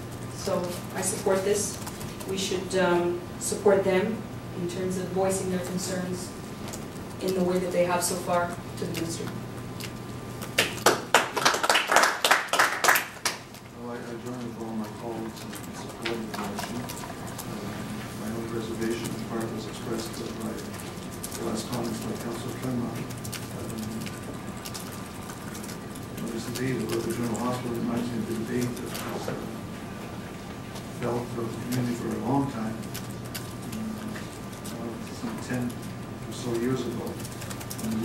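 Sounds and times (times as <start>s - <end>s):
faint steady hum: 0.0s - 38.0s
people clapping: 10.6s - 13.6s.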